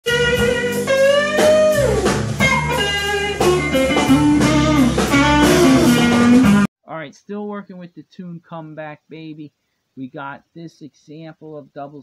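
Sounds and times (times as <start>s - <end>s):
bass and drums: 0.0s - 6.7s
electric blues guitar lead: 0.1s - 6.6s.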